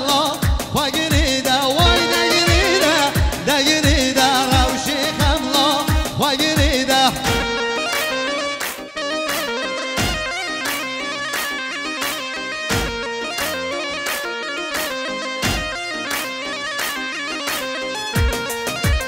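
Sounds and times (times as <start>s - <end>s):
steady drum beat: 0.4s - 7.6s, 10.0s - 10.4s, 12.7s - 13.1s, 15.4s - 16.4s, 18.2s - 19.0s
plucked-string lead melody: 1.7s - 19.0s.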